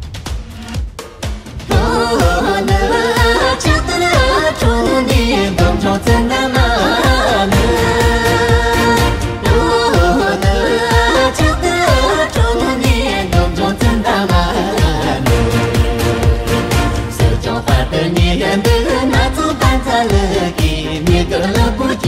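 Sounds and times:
steady dance beat: 0.0 - 22.0
person singing: 1.7 - 22.0.

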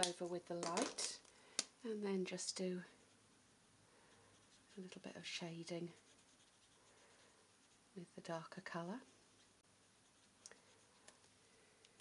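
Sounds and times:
marker scratching on card: 5.9 - 8.0, 9.3 - 11.2.

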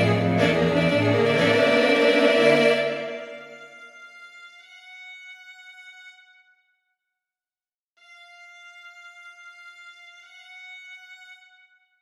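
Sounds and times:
sampled string quartet chord: 0.0 - 3.6.

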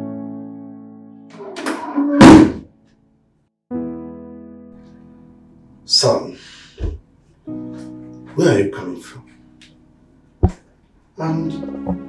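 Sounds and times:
electric piano chords: 0.0 - 1.6, 3.7 - 6.1
loud sudden thud: 2.2 - 2.6.

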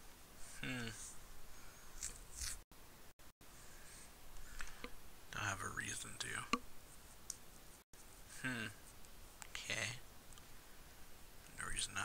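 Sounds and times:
person speaking softly: 0.6 - 1.1, 5.3 - 6.6, 11.5 - 12.0.

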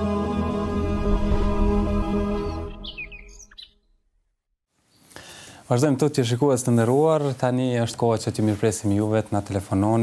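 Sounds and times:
bird chirp sound effect: 2.3 - 4.2.

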